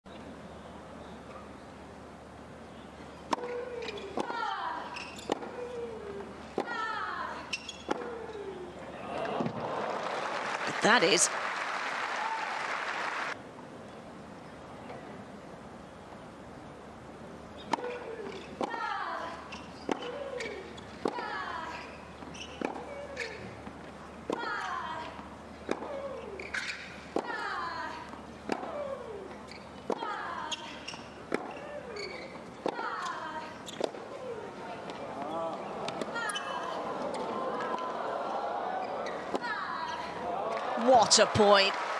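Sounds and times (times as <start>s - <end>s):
crowd applause: 9.1s - 13.4s, 40.3s - 41.9s.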